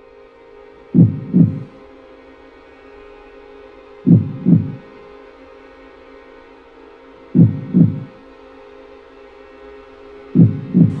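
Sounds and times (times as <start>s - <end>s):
steady low drone: 0.8s - 2.0s, 3.9s - 5.2s, 7.2s - 8.4s, 9.9s - 11.0s
heartbeat thumps: 1.0s - 1.7s, 4.1s - 4.8s, 7.4s - 8.1s, 10.4s - 11.0s.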